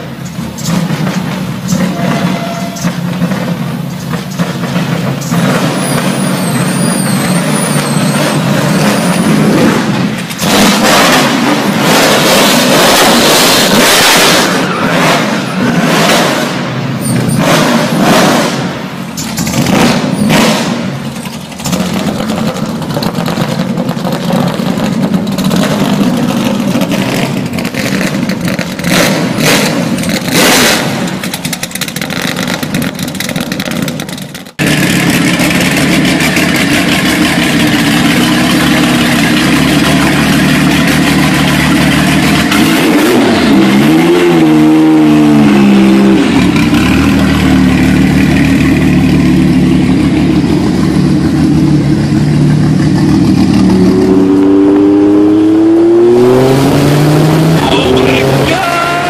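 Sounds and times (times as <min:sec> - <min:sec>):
car engine revving: 0:00.0 - 0:59.0
car engine running steadily: 0:00.0 - 0:59.0
loud engine blasts: 0:00.0 - 0:59.0.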